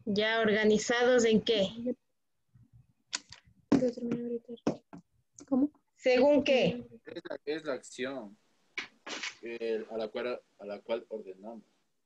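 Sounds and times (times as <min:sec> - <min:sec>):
person speaking over a video call: 0:05.4 - 0:11.8.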